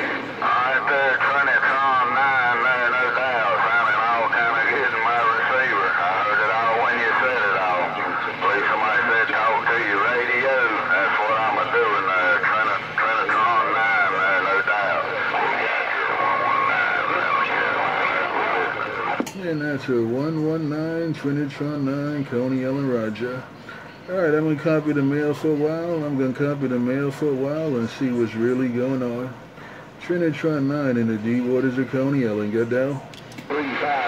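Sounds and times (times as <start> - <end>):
distorted voices over radio: 0.0 - 34.0
low radio hum: 0.0 - 34.0
radio hiss: 0.0 - 34.0.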